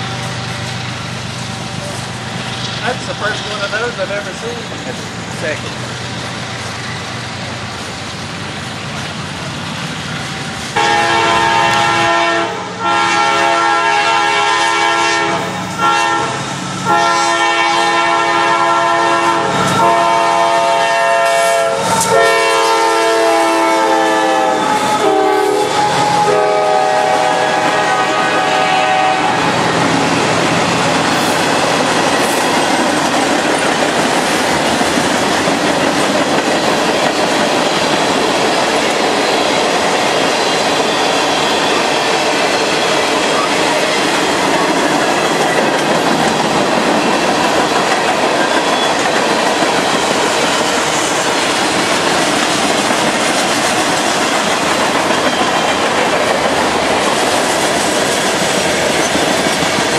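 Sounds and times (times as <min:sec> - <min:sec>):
train wheels on rail: 0:00.0 - 0:59.9
locomotive air horn blasts: 0:10.8 - 0:29.6.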